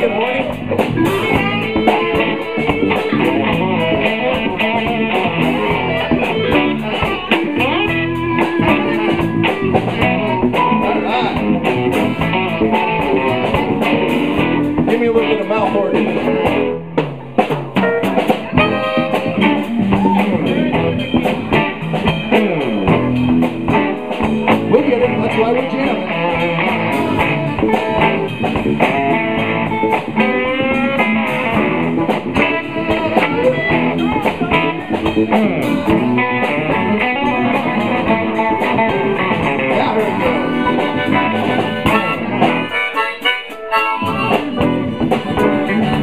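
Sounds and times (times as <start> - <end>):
tenor saxophone playing: 0.0 - 10.6, 18.5 - 21.8, 25.7 - 46.0
live blues band: 0.0 - 46.0.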